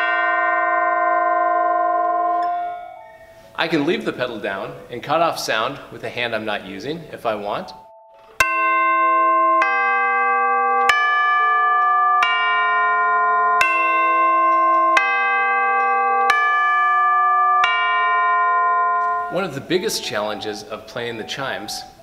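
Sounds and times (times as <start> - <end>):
tubular bells playing slow melody: 0.0 - 4.0, 7.0 - 22.0.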